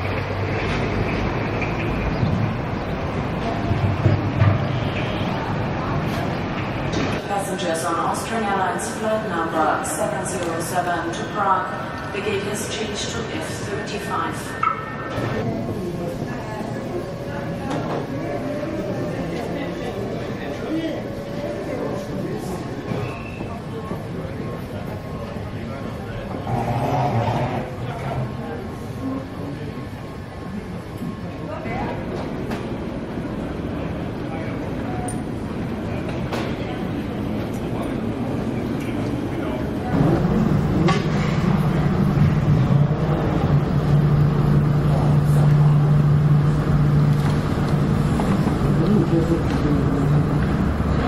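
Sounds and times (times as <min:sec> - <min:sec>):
murmur of voices: 0:02.6 - 0:51.0
low rumbling hum: 0:39.9 - 0:51.0
steady low drone: 0:39.9 - 0:51.0.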